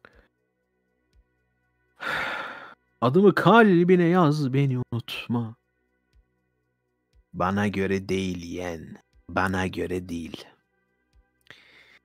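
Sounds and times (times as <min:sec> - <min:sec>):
breathy sigh-like rush: 0:02.0 - 0:02.8.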